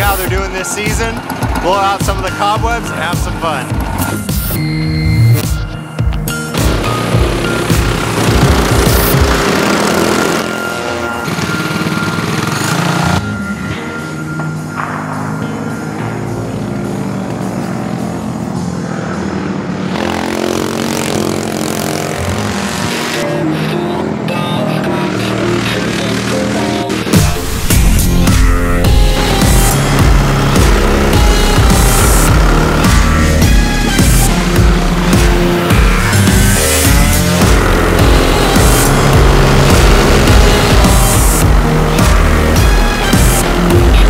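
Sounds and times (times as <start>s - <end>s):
racing kart engines revving: 0.0s - 5.5s, 6.3s - 44.0s
background music: 0.0s - 44.0s.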